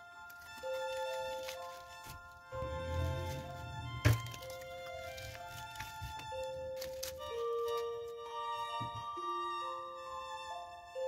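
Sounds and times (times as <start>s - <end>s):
paper handling noise: 0.0s - 8.1s
background music: 0.0s - 11.0s.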